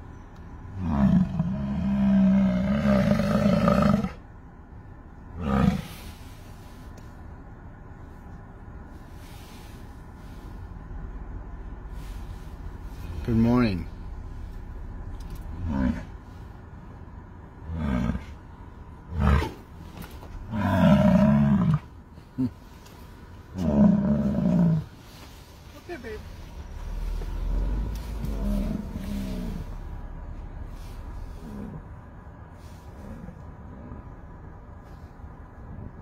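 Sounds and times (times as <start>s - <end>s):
loud roaring vocal calls: 0.7s - 4.2s, 20.5s - 21.9s, 23.5s - 24.9s, 26.9s - 30.0s.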